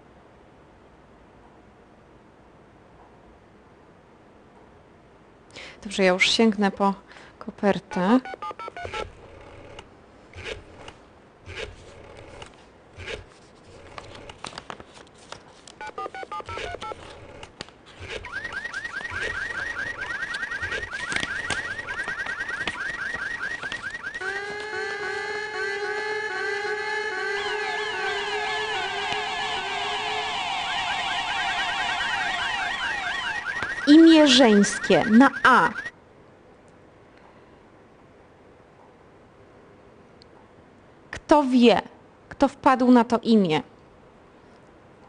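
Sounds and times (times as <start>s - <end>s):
telephone keypad tones: 7.9s - 9.8s, 15.8s - 17.4s, 18.1s - 24.7s
faint clicks and rustles: 10.4s - 24.0s
warbling electronic alarm effect: 18.0s - 35.9s.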